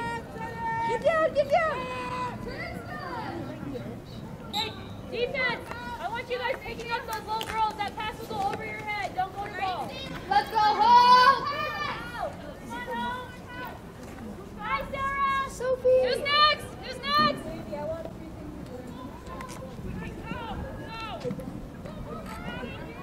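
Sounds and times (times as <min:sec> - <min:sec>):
girls shouting and calling out: 0:00.0 - 0:03.5, 0:05.0 - 0:13.9, 0:14.5 - 0:18.1, 0:18.8 - 0:23.0.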